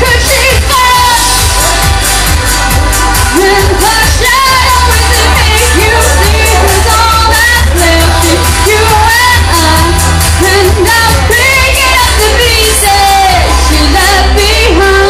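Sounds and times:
woman singing: 0.0 - 1.6, 3.3 - 15.0
live band with bass and drums: 0.0 - 15.0.

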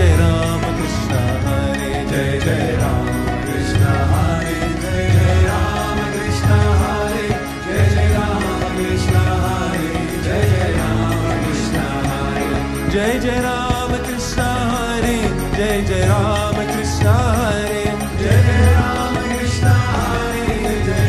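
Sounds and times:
voices chanting: 0.0 - 13.4
steady drum beat: 0.0 - 21.0.

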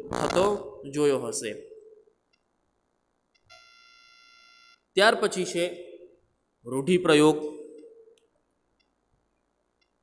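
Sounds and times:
faint electronic beep tone: 3.3 - 4.9.

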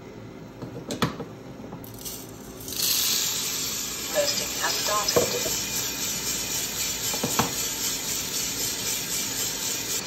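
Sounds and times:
coffee roaster humming: 0.0 - 10.0
coffee beans pouring rattle: 1.9 - 10.0.

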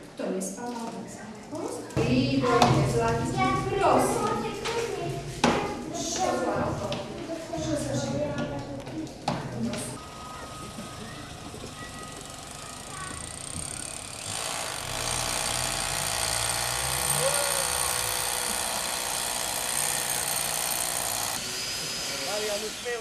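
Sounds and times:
faint voices: 0.6 - 14.2, 17.1 - 19.8
steady hiss: 21.4 - 23.0.

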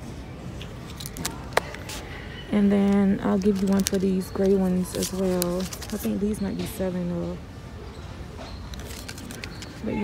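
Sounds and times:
store hum: 0.0 - 10.0
clothes and paper tag rustling: 0.6 - 7.4, 8.3 - 10.0.

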